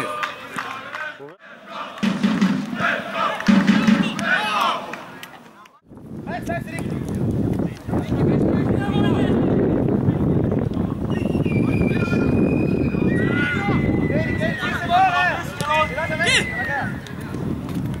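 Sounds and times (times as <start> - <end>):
people shouting: 2.7 - 5.1, 11.9 - 16.9.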